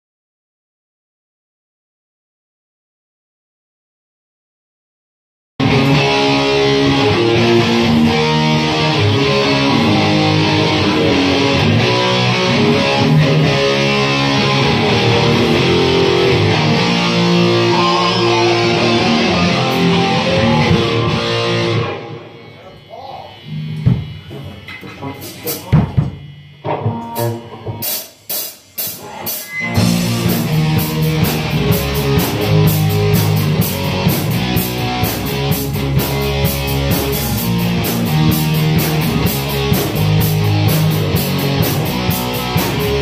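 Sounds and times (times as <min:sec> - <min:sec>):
rock music with electric guitar: 0:05.6 - 0:43.0.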